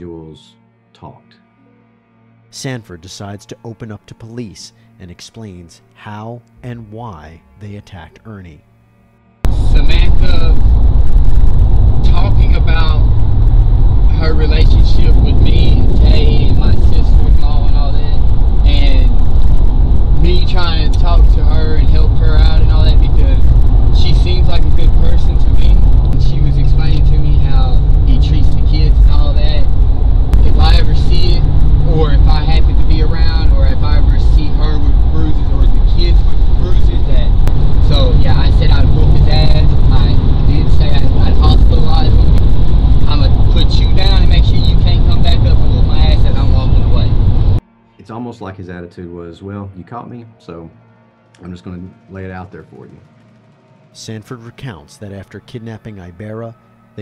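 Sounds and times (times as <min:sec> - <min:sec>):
muffled man talking: 0:02.5 - 0:08.6, 0:09.5 - 0:10.6, 0:12.0 - 0:13.1, 0:14.1 - 0:19.2, 0:20.2 - 0:29.7, 0:30.4 - 0:42.3, 0:43.0 - 0:47.1, 0:48.0 - 0:50.7, 0:51.4 - 0:53.0, 0:54.0 - 0:56.6
car road and engine rumble: 0:09.5 - 0:47.6.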